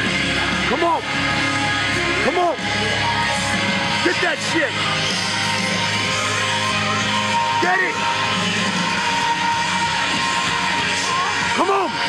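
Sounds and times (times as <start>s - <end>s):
loud rock music with guitar: 0.0s - 12.0s.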